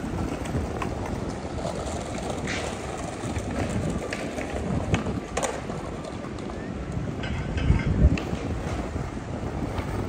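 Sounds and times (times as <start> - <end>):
city traffic hum: 0.0 - 10.0
wind buffeting microphone: 0.0 - 10.0.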